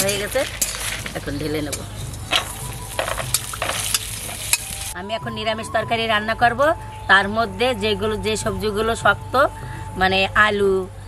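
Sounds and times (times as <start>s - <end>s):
hot oil sizzling: 0.0s - 5.0s
metal spatula scraping: 0.0s - 5.0s.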